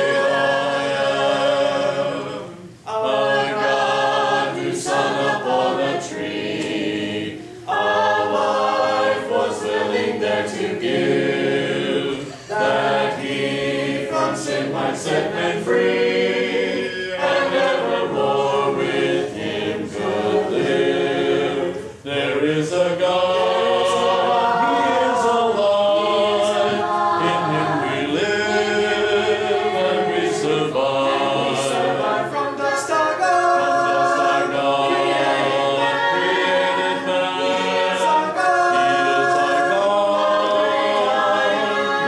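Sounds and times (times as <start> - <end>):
congregation singing a hymn: 0.0 - 42.0.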